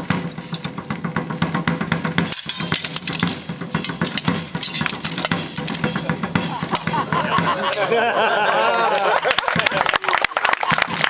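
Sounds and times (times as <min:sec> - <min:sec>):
sharp drum beats: 0:00.0 - 0:10.0.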